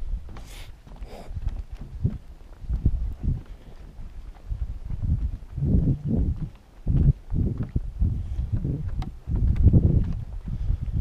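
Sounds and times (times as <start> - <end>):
footsteps on wooden planks: 0.0 - 11.0.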